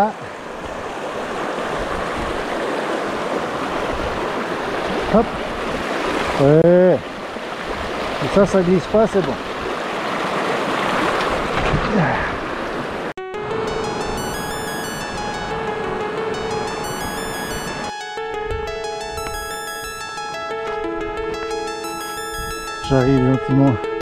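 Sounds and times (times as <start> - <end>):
rushing mountain stream: 0.0 - 13.1
background music: 13.2 - 24.0.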